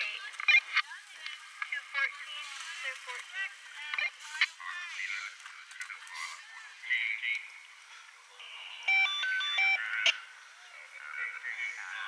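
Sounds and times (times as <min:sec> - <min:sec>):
electronic beep melody: 0:08.4 - 0:09.8.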